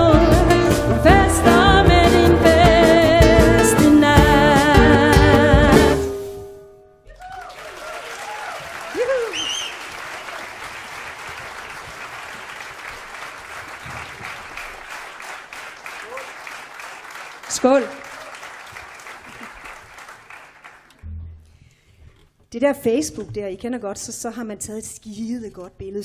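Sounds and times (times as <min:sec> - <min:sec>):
audience applauding: 0:07.1 - 0:21.0.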